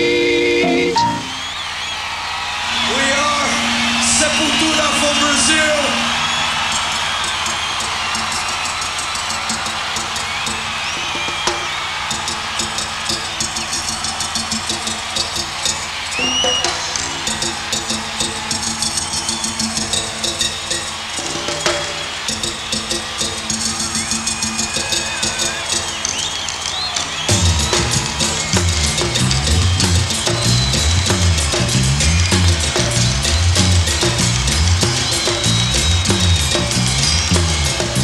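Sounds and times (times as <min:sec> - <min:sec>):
crowd cheering and whistling: 0:00.0 - 0:38.0.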